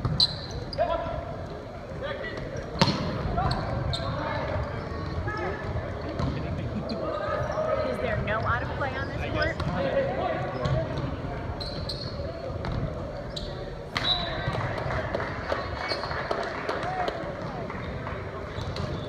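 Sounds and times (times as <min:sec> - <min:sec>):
sneaker squeaks: 0:00.0 - 0:01.0, 0:02.2 - 0:14.6, 0:15.5 - 0:16.3, 0:17.8 - 0:19.0.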